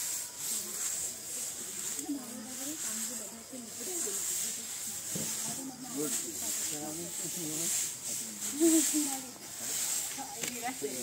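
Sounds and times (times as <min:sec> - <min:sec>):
steady high-pitched hiss: 0:00.0 - 0:11.0
people talking indistinctly: 0:00.1 - 0:11.0.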